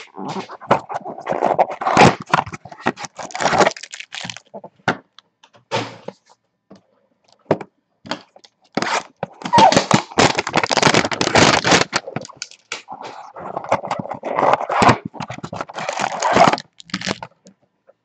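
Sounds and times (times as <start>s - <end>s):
cardboard rustling and scraping: 0.0s - 4.8s, 8.8s - 17.3s
plastic wrap crinkling: 0.0s - 4.8s, 8.1s - 17.5s.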